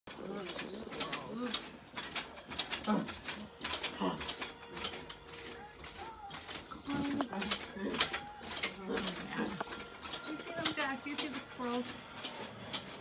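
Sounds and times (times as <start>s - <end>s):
low indistinct voices: 0.1s - 13.0s.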